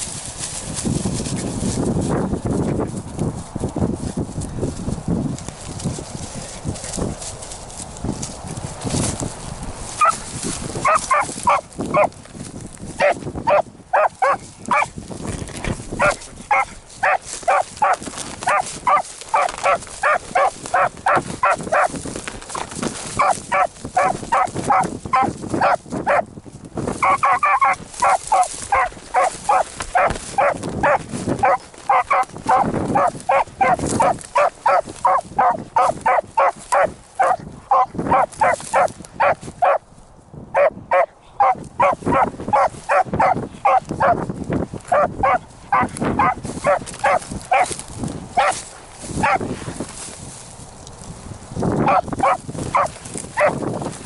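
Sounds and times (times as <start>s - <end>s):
dog baying with rapid barks: 10.0s - 10.2s, 10.8s - 12.2s, 13.0s - 15.0s, 15.6s - 22.0s, 23.0s - 26.3s, 27.0s - 39.8s, 40.5s - 47.8s, 48.4s - 49.4s, 51.8s - 53.6s.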